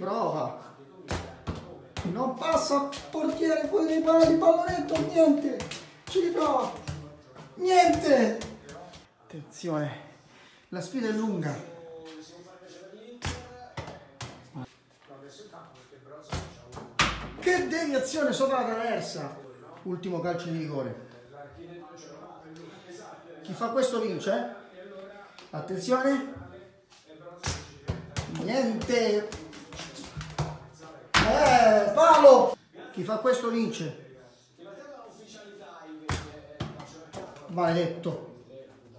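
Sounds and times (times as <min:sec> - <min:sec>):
ball bouncing on tiled floor: 0:01.0 - 0:09.0, 0:13.2 - 0:14.7, 0:16.3 - 0:17.7, 0:27.4 - 0:32.3, 0:36.1 - 0:37.9.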